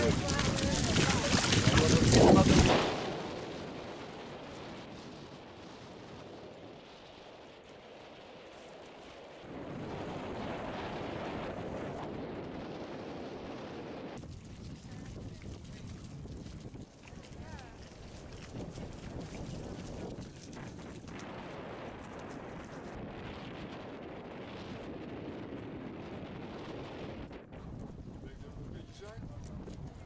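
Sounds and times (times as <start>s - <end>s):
wind blowing on microphone: 0.0s - 30.0s.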